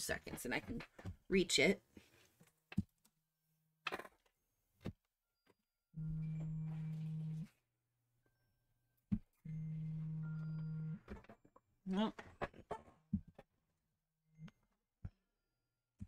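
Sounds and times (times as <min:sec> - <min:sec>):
phone vibrating on hard surface: 0:06.0 - 0:07.5, 0:09.4 - 0:11.1.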